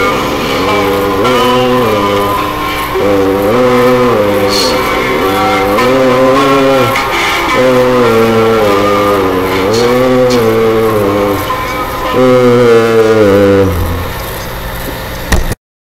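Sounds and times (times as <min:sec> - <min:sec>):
man chanting held notes: 0:00.0 - 0:14.6
low steady hum: 0:00.0 - 0:15.6.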